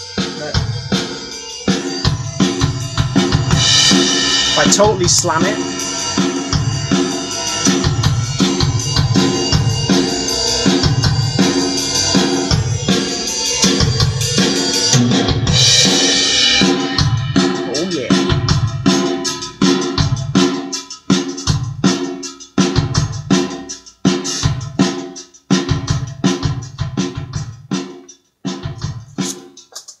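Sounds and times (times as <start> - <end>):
kick and snare drums: 0.2 - 29.6
cymbal crash: 3.2 - 17.6.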